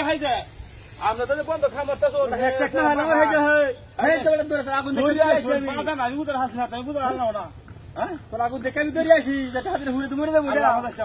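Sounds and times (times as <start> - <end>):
people talking in raised voices: 0.0 - 11.0.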